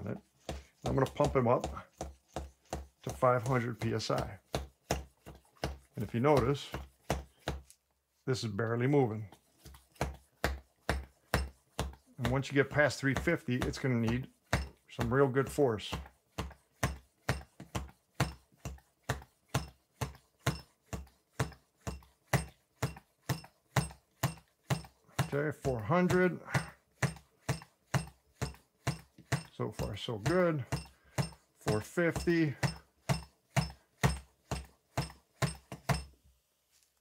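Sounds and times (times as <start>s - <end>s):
hand pump strokes: 0.0s - 7.6s, 8.9s - 36.1s.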